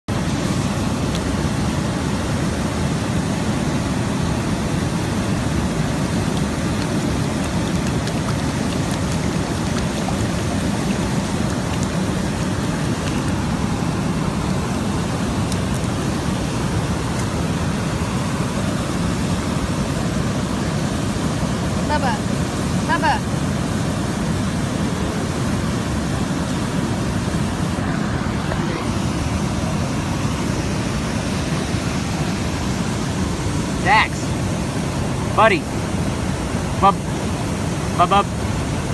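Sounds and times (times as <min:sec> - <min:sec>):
waterfall rushing: 0:00.1 - 0:38.9.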